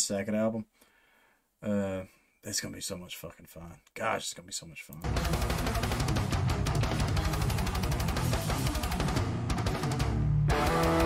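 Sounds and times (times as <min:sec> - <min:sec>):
death metal music: 0:05.0 - 0:11.0.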